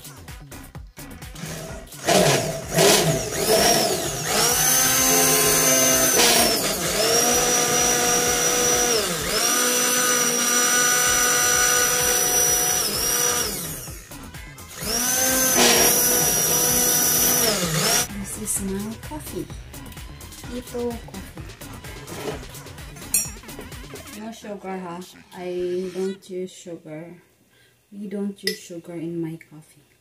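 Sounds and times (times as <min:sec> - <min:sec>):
immersion blender whirring in glass jar: 0:01.4 - 0:18.1.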